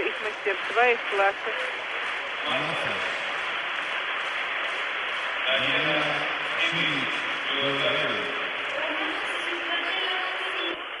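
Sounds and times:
crowd applauding: 0:00.0 - 0:11.0
crowd voices: 0:00.0 - 0:11.0.

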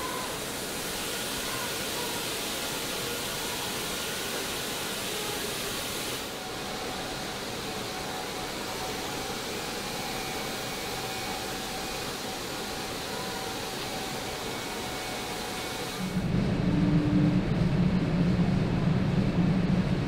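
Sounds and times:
rushing hiss of air: 0:00.0 - 0:16.5
faint steady whine: 0:00.0 - 0:20.0.

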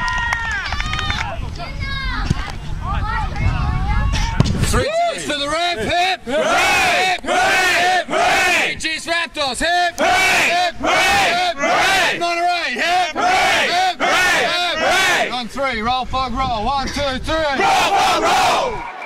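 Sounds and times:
men chanting and shouting: 0:04.7 - 0:18.9.

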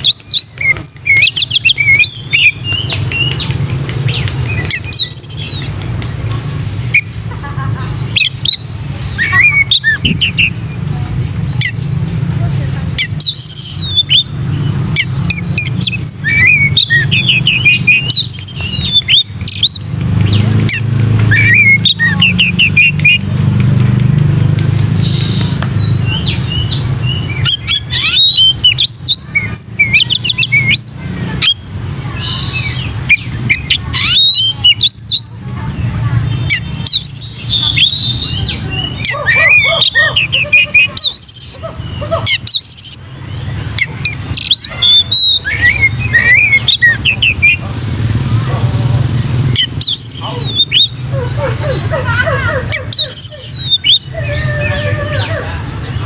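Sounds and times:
bird singing whistled phrases: 0:08.2 - 0:10.6, 0:12.9 - 0:14.4, 0:15.0 - 0:19.9, 0:21.3 - 0:23.2, 0:25.0 - 0:31.6, 0:32.2 - 0:35.4, 0:36.4 - 0:47.6, 0:49.6 - 0:51.0, 0:52.8 - 0:55.4.

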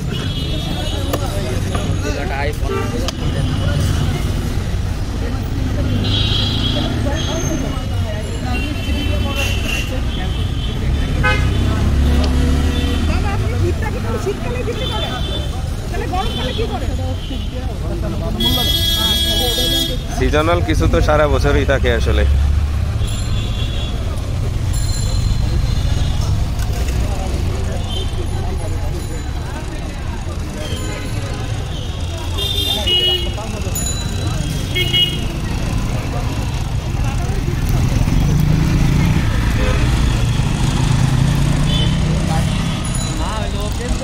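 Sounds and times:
traffic rumble: 0:00.0 - 0:44.0
car horn toots: 0:11.2 - 0:11.7.

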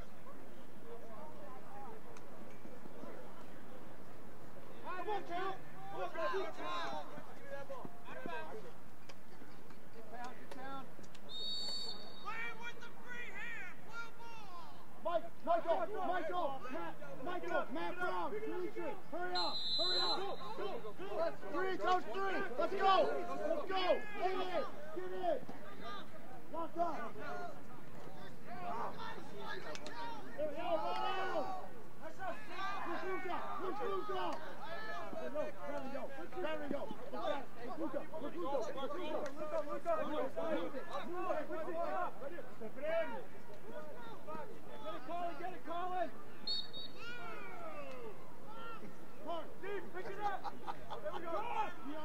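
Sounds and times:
players shouting: 0:04.6 - 0:08.7, 0:11.3 - 0:52.0.

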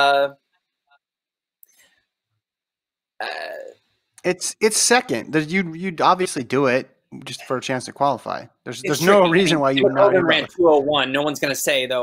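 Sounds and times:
man saying uh: 0:04.2 - 0:11.8.

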